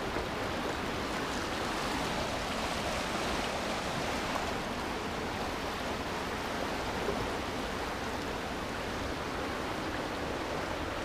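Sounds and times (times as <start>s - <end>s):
river rushing over rocks: 0.0s - 11.0s.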